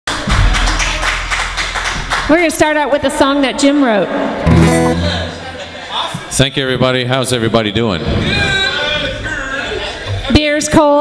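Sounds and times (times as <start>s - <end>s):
audience clapping: 0.1s - 3.0s.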